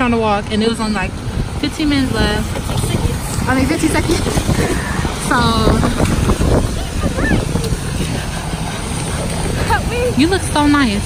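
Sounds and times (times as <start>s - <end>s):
traffic on wet road: 0.0s - 11.0s.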